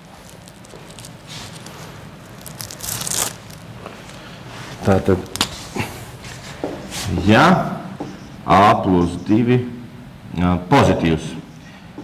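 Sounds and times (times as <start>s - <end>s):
crinkling scrape: 0.0s - 7.1s
rustling handling noise: 0.0s - 7.2s
low steady hum: 0.0s - 12.0s.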